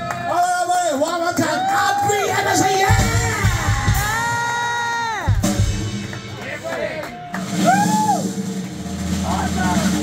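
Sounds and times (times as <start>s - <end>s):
live rock band: 2.0s - 10.0s.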